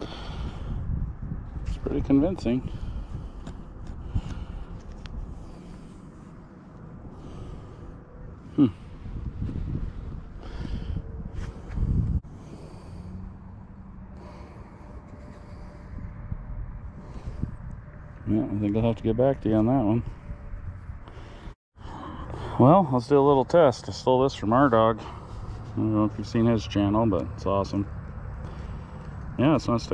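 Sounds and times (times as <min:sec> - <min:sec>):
person breathing: 0:00.0 - 0:00.9, 0:02.6 - 0:18.2, 0:20.1 - 0:22.6, 0:25.0 - 0:25.8, 0:28.3 - 0:29.2.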